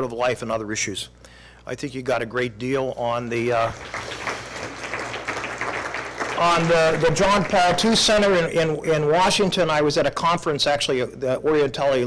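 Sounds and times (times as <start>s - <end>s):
audience applauding: 3.6s - 8.3s.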